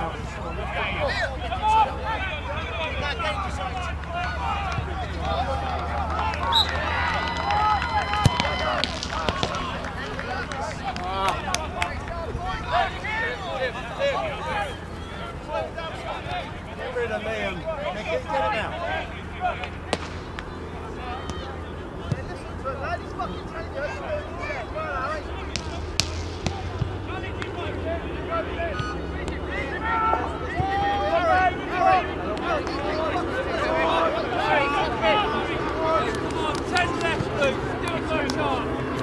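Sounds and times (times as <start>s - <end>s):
players calling out: 0.0s - 39.0s.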